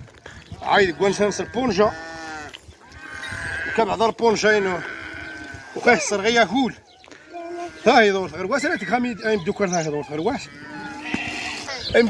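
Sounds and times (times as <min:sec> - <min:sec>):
sheep bleating: 0:00.7 - 0:12.0.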